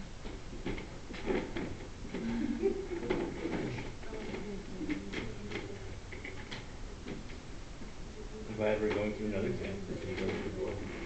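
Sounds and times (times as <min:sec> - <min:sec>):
low room murmur: 0:00.0 - 0:11.0.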